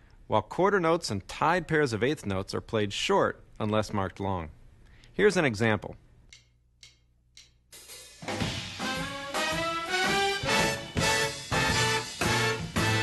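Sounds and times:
soft ticks: 6.3s - 7.6s
big band playing swing: 7.8s - 13.0s.

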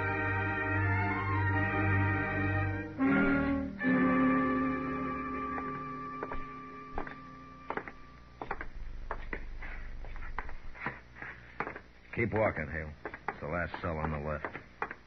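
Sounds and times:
music bridge chords: 0.0s - 8.2s
footsteps: 5.4s - 15.0s.

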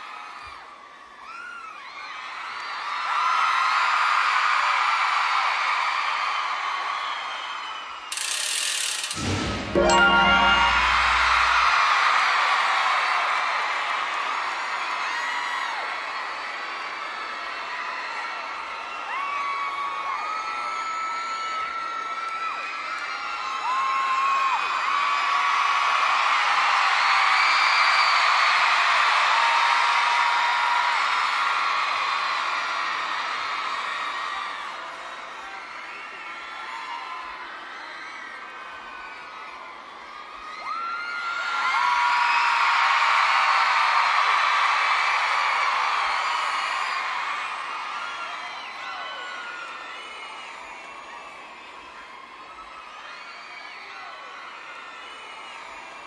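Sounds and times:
audience cheering: 9.2s - 12.0s.

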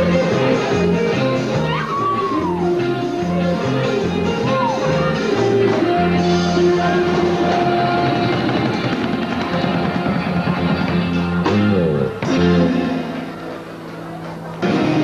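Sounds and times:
band playing dance music: 0.0s - 15.0s
drum kit: 0.0s - 15.0s
electric guitar: 0.0s - 15.0s.

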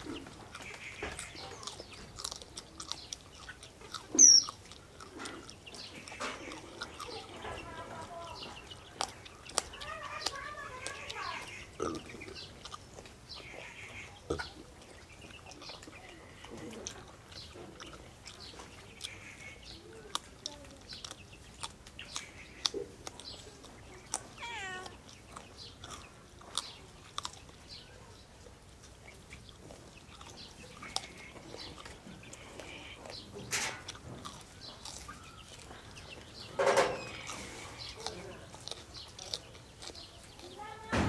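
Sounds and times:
animal calls: 0.0s - 28.1s, 29.0s - 41.0s
wet chewing and lip smacks: 0.0s - 40.9s.

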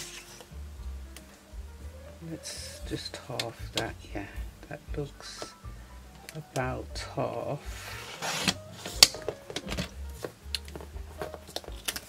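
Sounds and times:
paper trimmer blade sliding: 8.0s - 9.1s.

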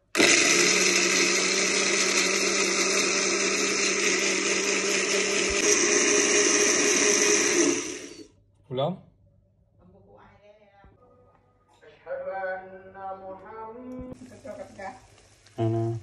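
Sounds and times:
blender grinding spices: 0.0s - 8.3s.

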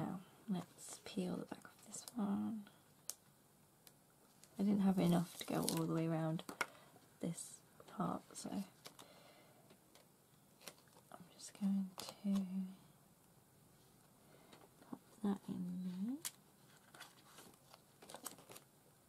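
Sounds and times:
woman humming: 15.2s - 16.3s.

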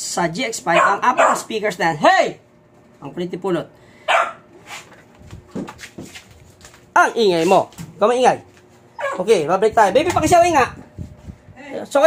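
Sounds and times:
dog barking: 0.7s - 1.5s, 4.1s - 4.5s, 9.0s - 9.3s.

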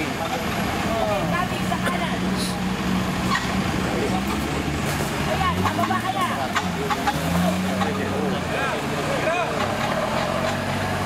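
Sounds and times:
off-road vehicle engine running: 0.0s - 11.0s.

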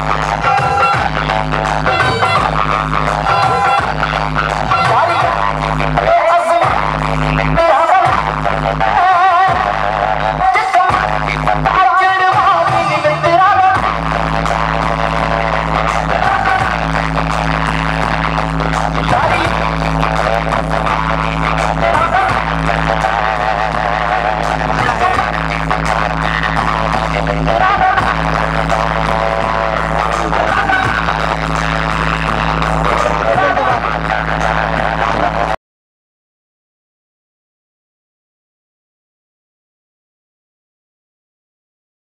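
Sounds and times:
dance song with heavy bass: 0.0s - 35.6s.

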